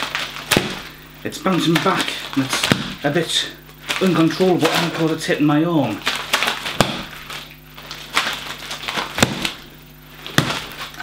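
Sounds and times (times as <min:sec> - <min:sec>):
rubber ball slapping: 0:00.0 - 0:03.1, 0:06.6 - 0:07.3, 0:09.0 - 0:11.0.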